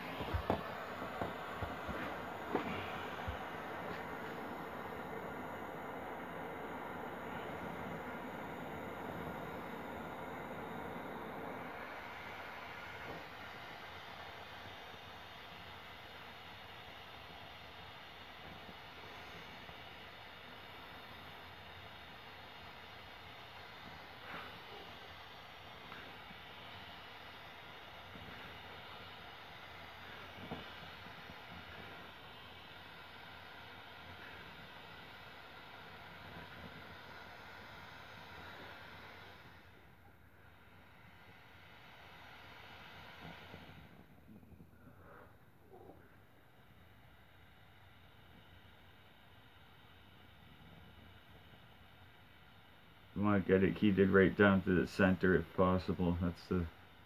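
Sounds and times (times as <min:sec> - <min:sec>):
torch flame hissing: 0:00.0 - 0:57.0.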